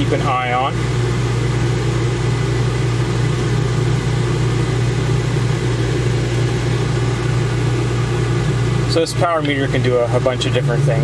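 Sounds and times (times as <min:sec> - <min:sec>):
microwave oven humming: 0:00.0 - 0:11.0.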